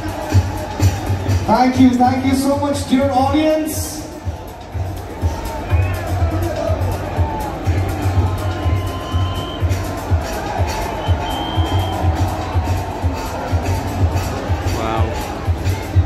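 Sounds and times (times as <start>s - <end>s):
crowd noise: 0.0s - 16.0s
music with bass beat over loudspeakers: 0.0s - 16.0s.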